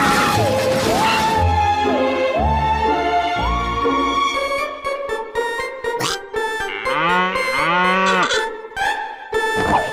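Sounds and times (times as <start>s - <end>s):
background music: 0.0s - 9.9s
cartoon cow mooing: 6.0s - 8.5s.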